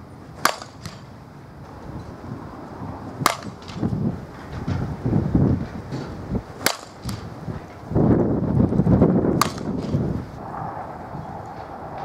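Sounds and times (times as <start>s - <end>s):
bat striking ball crack: 0.4s - 1.1s, 3.2s - 4.0s, 6.0s - 7.4s, 9.3s - 10.1s.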